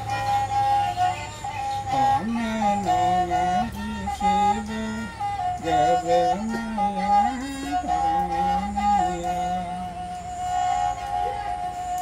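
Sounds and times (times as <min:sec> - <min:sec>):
bowed wooden fiddle: 0:00.0 - 0:12.0
low steady hum: 0:00.0 - 0:12.0.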